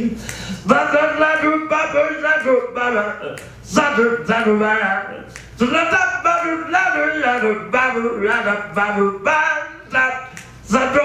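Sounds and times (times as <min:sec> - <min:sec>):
man scat singing: 0:00.0 - 0:11.0.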